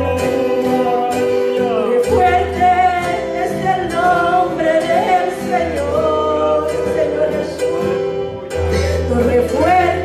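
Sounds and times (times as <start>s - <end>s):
small live band: 0.0s - 10.0s
woman singing into a microphone: 0.0s - 10.0s.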